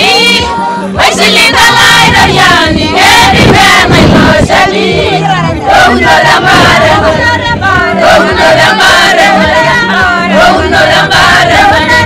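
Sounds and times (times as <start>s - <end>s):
women singing in chorus: 0.0s - 12.0s.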